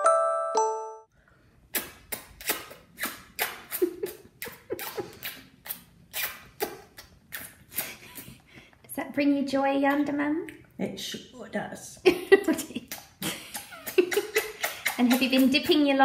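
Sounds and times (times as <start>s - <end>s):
wet lip smacks: 1.7s - 8.3s, 12.9s - 15.3s.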